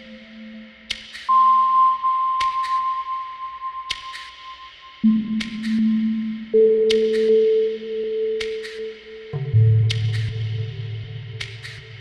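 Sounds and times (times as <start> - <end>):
ambient electronic music: 0.0 - 12.0.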